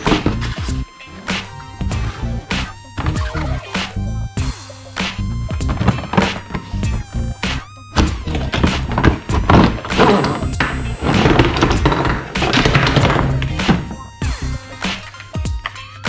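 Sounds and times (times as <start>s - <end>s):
toy boxes thunking on table: 0.0s - 0.6s, 3.0s - 3.4s, 5.1s - 6.9s, 8.0s - 14.2s
electronic music: 0.0s - 16.0s.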